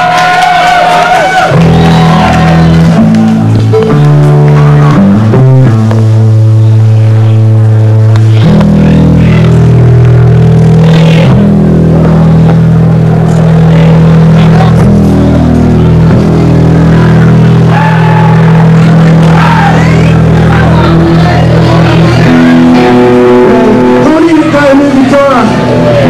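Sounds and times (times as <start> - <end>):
distorted guitar and bass chords: 0.0 - 26.0
punk band playing: 0.0 - 26.0.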